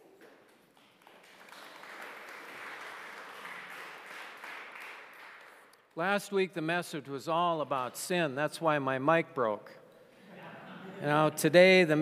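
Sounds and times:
congregation applauding: 0:00.0 - 0:06.0.

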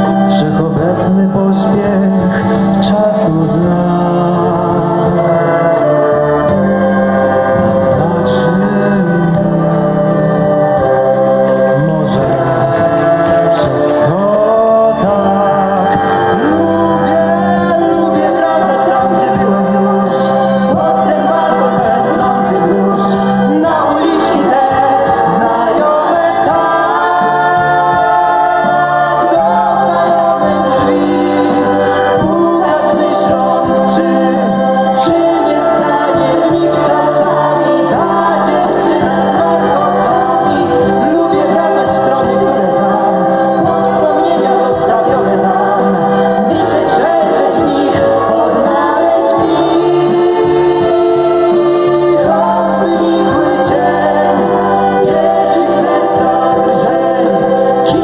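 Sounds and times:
band accompaniment: 0:00.0 - 0:58.0
group singing together: 0:00.0 - 0:58.0.

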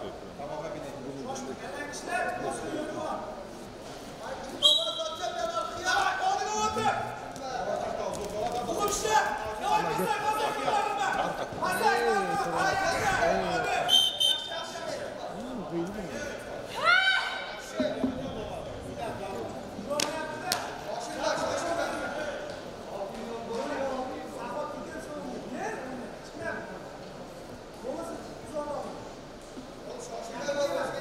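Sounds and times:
people shouting in a hall: 0:16.6 - 0:17.7.

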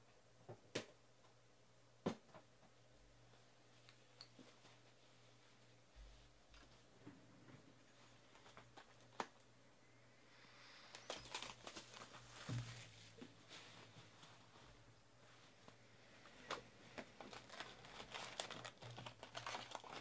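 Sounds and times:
wrapping crinkling and tearing: 0:10.9 - 0:12.5, 0:16.5 - 0:20.0
soft thump: 0:12.5 - 0:12.9.

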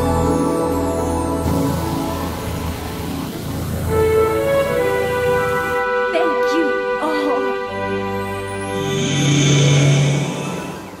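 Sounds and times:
low rumbling swell with hiss: 0:00.0 - 0:11.0
sustained orchestral chords: 0:00.0 - 0:11.0.

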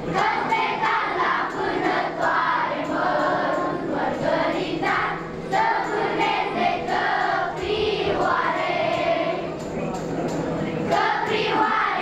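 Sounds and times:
children's choir singing: 0:00.0 - 0:10.1, 0:10.8 - 0:12.0.

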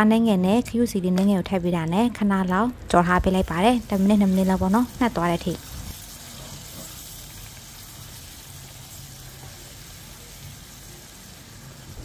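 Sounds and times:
chili sizzling in hot oil: 0:03.2 - 0:12.0.

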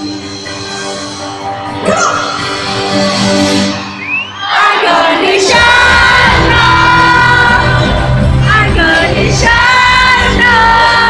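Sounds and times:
band with heavy drums and bass: 0:05.5 - 0:11.0.

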